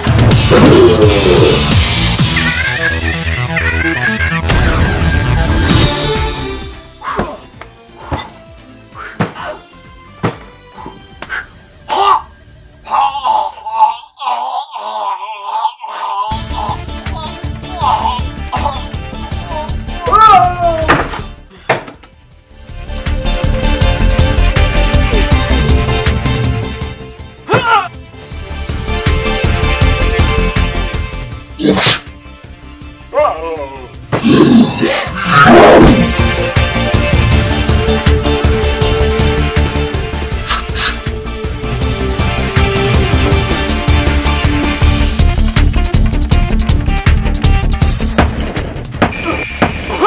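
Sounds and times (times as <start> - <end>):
background music: 0.0 - 50.0
punches landing: 10.1 - 10.6, 48.1 - 50.0.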